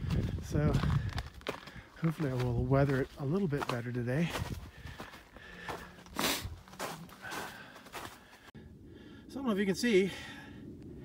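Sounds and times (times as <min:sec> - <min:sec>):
footsteps crunching in snow: 0:00.0 - 0:08.5.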